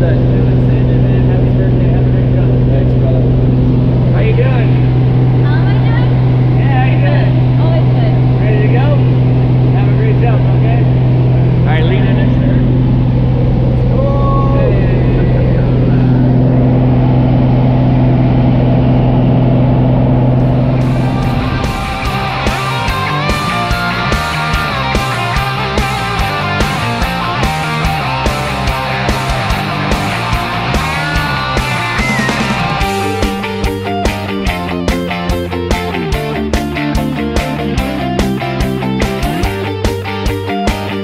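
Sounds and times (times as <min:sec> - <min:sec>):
indistinct voices: 0:00.0 - 0:35.0
propeller plane engine drone: 0:00.0 - 0:41.0.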